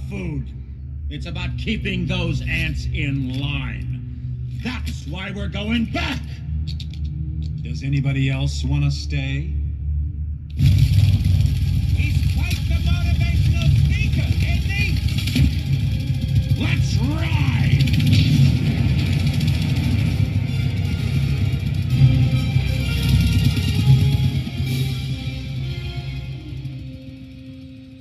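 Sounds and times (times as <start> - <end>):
film music: 0.0 - 28.0
loud low rumble: 0.0 - 28.0.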